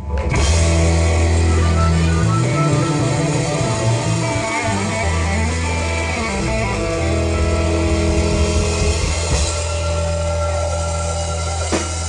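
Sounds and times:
electric guitar: 0.0s - 12.0s
live blues-rock band playing: 0.0s - 12.0s
long low bass notes: 0.0s - 12.0s.

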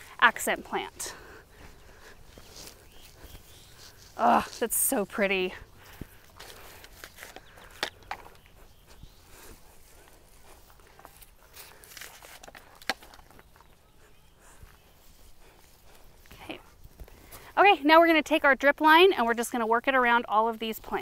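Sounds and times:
rustling of plants: 0.0s - 18.0s
soft footsteps: 0.2s - 17.5s.

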